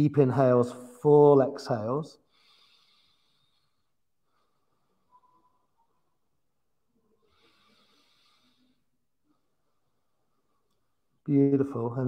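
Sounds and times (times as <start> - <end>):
faint slow deep breath: 2.2 - 5.6, 7.0 - 11.2
faint high tone: 5.1 - 6.2.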